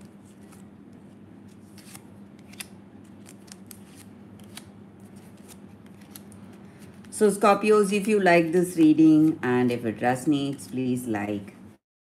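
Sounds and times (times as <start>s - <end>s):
cards clicking and snapping: 0.3s - 7.1s.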